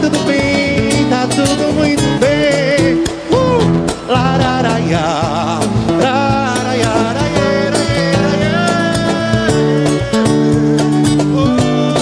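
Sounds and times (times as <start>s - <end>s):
cajon beat: 0.0s - 12.0s
man singing with vibrato: 0.0s - 12.0s
strummed guitar: 0.0s - 12.0s.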